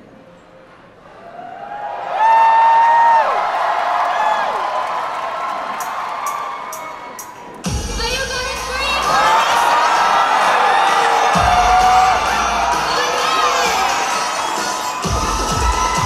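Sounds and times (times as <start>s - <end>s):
loud drawn-out whoop: 1.2s - 7.2s, 9.1s - 16.0s
crowd cheering and whooping: 1.2s - 7.7s, 8.6s - 16.0s.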